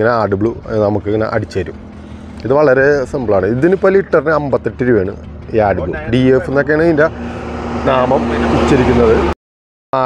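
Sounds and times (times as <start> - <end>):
men talking: 0.0 - 9.4.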